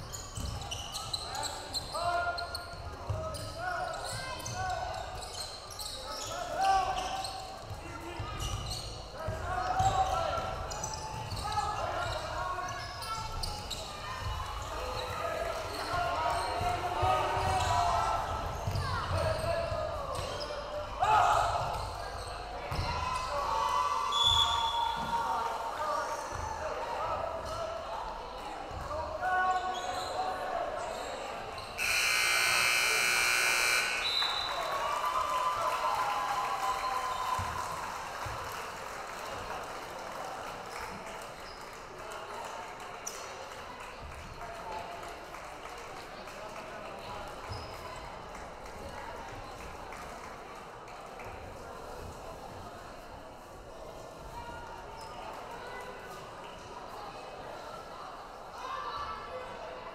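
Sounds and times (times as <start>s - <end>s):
crowd voices: 0.0s - 59.9s
scoreboard buzzer: 31.8s - 34.4s.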